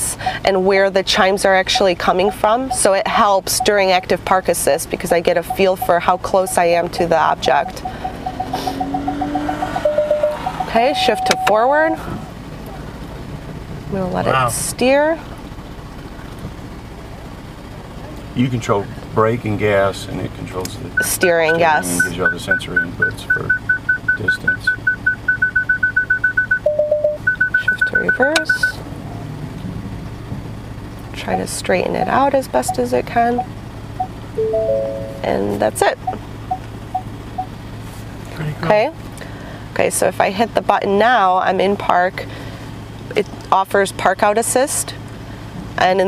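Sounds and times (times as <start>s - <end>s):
low cabin hum: 0.0s - 8.3s, 9.9s - 12.8s, 20.0s - 24.8s, 31.2s - 37.5s
vehicle hum creeping forward: 0.0s - 46.0s
short electronic beeps: 1.7s - 3.0s, 5.5s - 11.6s, 21.0s - 28.8s, 32.7s - 35.3s.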